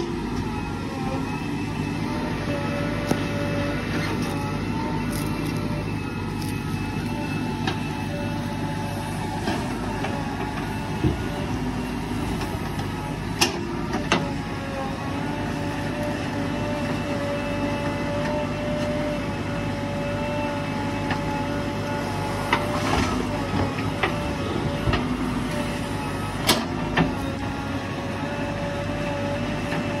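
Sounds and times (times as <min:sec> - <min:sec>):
backhoe diesel engine with whine: 0:00.0 - 0:30.0.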